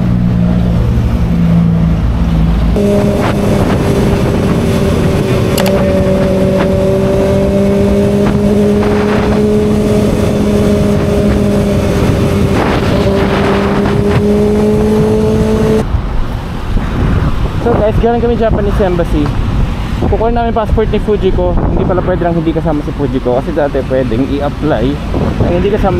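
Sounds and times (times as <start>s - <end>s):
motorcycle engine cruising: 0.0s - 25.9s
wind and road noise: 0.0s - 25.9s.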